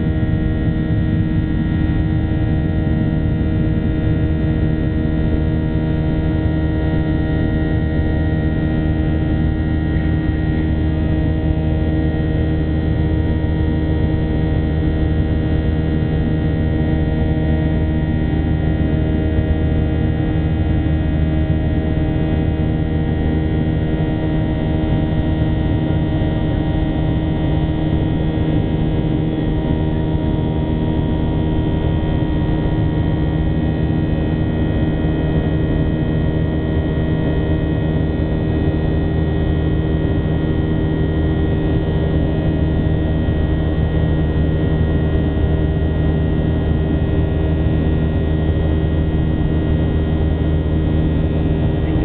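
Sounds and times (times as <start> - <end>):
airplane cabin engine drone: 0.0 - 52.0.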